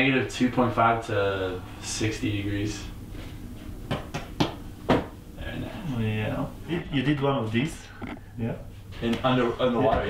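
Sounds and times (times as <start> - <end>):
sharp knocks: 3.9 - 5.2.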